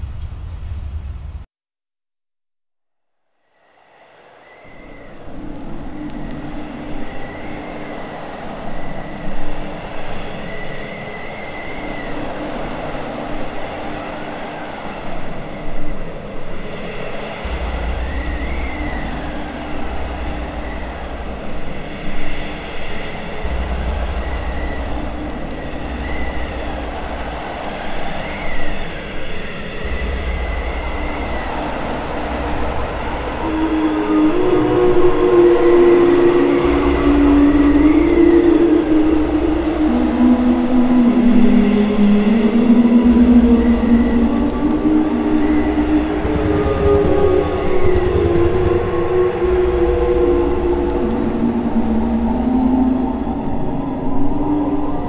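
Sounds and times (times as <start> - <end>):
rumbling train-like noise: 0.0 - 1.4, 3.6 - 55.0
deep bass drone: 17.4 - 21.9, 23.4 - 27.6, 29.8 - 55.0
bright sustained synth chord: 33.4 - 55.0.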